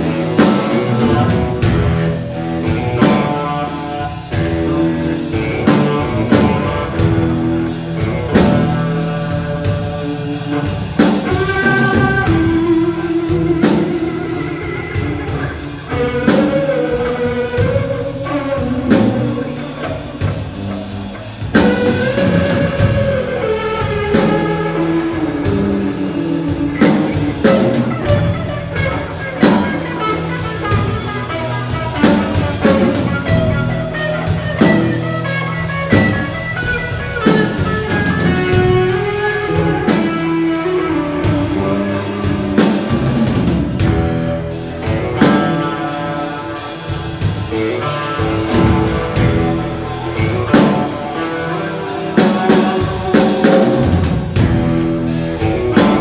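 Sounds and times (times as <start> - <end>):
drum kit steady beat: 0.0 - 56.0
electric bass: 0.0 - 56.0
lead electric guitar: 0.0 - 56.0.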